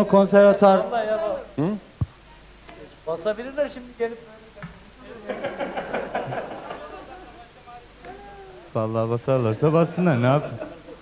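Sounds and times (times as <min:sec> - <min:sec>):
people laughing: 0:05.1 - 0:07.5, 0:09.9 - 0:11.0.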